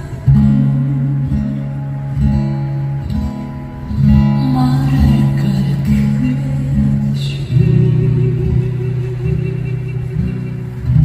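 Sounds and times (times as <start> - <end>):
acoustic guitar strummed chords: 0.0 - 11.0.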